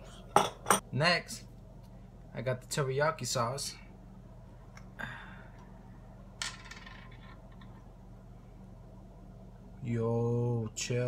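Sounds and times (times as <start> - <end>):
low hum: 3.7 - 11.0.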